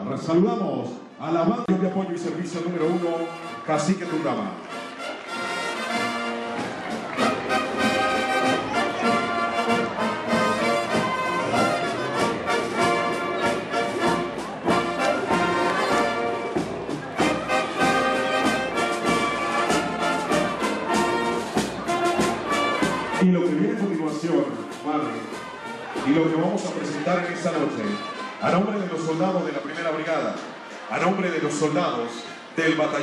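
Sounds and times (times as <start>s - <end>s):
military marching band playing: 2.6s - 27.0s.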